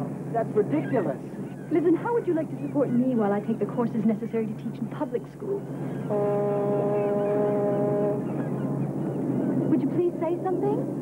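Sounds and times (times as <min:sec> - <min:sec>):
boat horn blast: 0:06.0 - 0:09.0.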